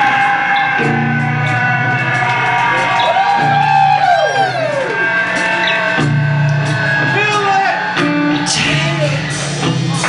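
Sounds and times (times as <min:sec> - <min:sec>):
guitar sliding notes: 0:00.0 - 0:10.0
live rock band playing: 0:00.0 - 0:10.0.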